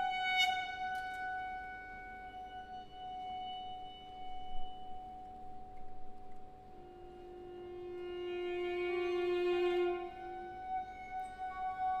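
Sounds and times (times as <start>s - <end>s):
saxophone: 0.0s - 12.0s.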